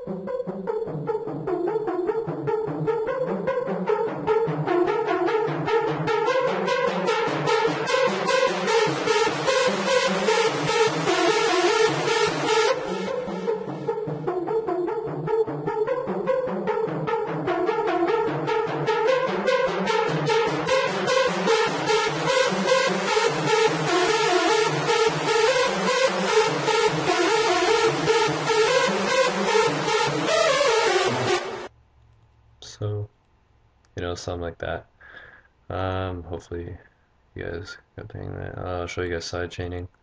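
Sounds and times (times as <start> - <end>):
stuttering synth lead notes: 0.0 - 31.7.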